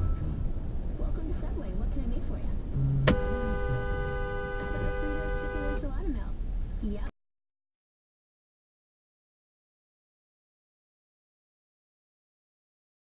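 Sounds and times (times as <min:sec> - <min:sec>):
road noise inside car: 0:00.0 - 0:07.1
two-tone car horn: 0:02.9 - 0:05.9.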